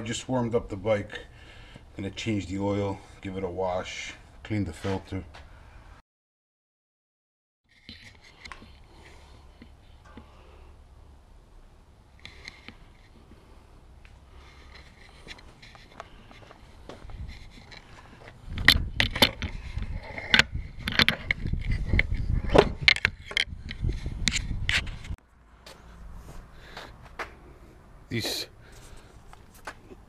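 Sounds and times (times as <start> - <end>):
rubbing and scraping handling noise: 7.7 - 10.4, 12.2 - 27.4.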